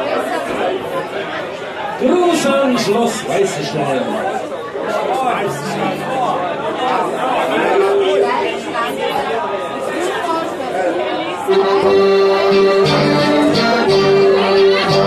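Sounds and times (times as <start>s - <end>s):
crowd chatter: 0.0s - 15.0s
band playing a tune: 5.4s - 7.6s, 11.5s - 15.0s
held instrument notes: 5.4s - 8.1s, 11.5s - 15.0s.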